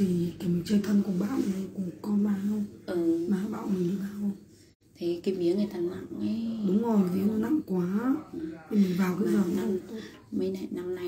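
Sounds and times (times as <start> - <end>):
woman chanting: 0.0 - 11.0.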